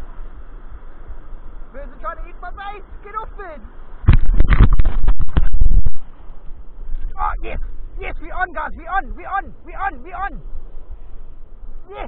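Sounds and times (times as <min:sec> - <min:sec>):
wind buffeting microphone: 0:03.9 - 0:11.9
thuds and rushes: 0:04.0 - 0:06.0.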